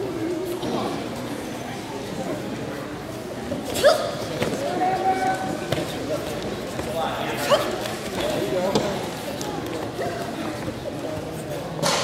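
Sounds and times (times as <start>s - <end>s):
people calling out in gymnasium: 3.6s - 6.1s, 7.0s - 8.4s.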